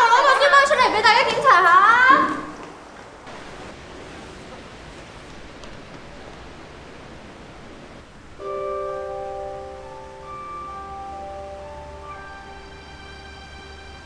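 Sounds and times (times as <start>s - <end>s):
room tone hiss: 0.0s - 14.0s
soft background music: 8.4s - 14.0s.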